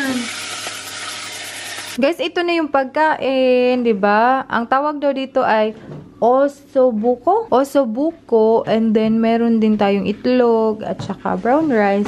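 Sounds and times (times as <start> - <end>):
woman speaking: 0.0 - 0.4, 2.0 - 12.0
food sizzling in a pan: 0.0 - 2.0.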